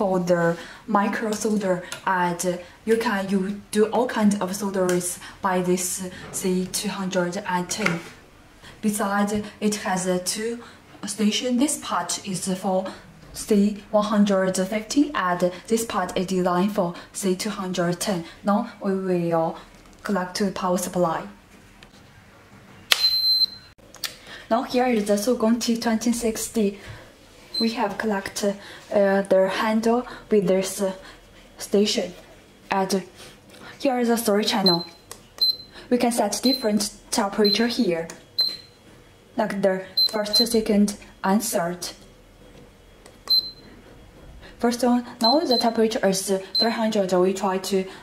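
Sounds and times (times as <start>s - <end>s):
power switch clicking: 22.9s - 23.2s
high beep: 22.9s - 23.7s, 34.6s - 35.7s, 37.4s - 37.8s, 38.4s - 38.8s, 40.0s - 40.6s, 43.3s - 43.7s, 45.2s - 45.8s, 46.5s - 46.8s
short high beep: 22.9s - 23.7s.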